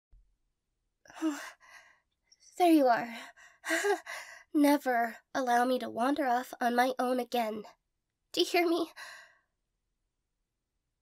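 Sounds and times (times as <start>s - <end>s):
faint breath: 1.2s - 2.1s, 9.0s - 9.5s.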